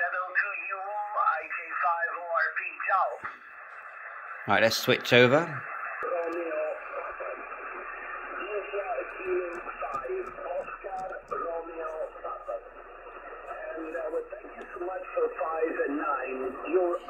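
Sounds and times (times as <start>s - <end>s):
radio voice talking: 0.0s - 3.4s, 4.4s - 17.0s
radio band noise hiss: 0.0s - 17.0s.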